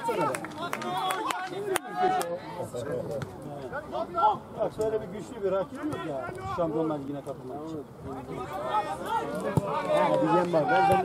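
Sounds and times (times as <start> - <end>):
men talking and calling out: 0.0 - 11.0.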